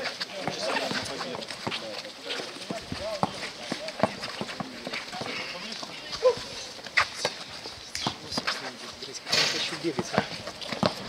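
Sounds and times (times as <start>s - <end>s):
sneakers on court: 0.0s - 8.9s, 9.6s - 11.0s
basketball dribbling: 2.6s - 6.5s, 9.9s - 11.0s.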